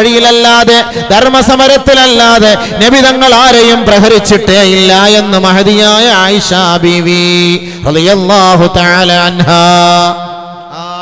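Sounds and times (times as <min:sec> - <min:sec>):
man preaching in sing-song: 0:00.0 - 0:11.0.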